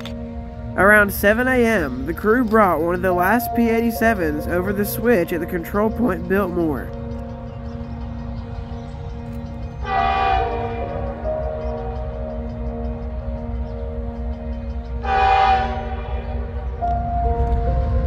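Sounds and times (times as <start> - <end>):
train rumbling: 0.0 - 18.0
locomotive air horn blasts: 9.8 - 12.8, 15.0 - 17.4.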